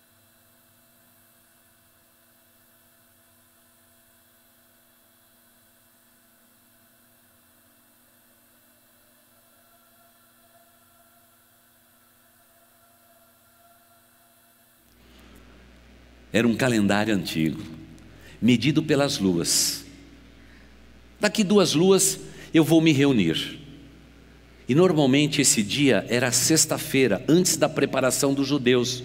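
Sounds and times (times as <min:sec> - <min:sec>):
faint steady hum and hiss: 0:00.0 - 0:29.0.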